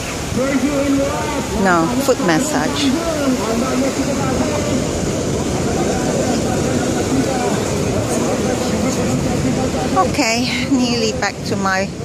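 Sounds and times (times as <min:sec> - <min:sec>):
beach surf: 0:00.0 - 0:12.0
faint voices: 0:00.0 - 0:12.0
wind: 0:00.0 - 0:12.0.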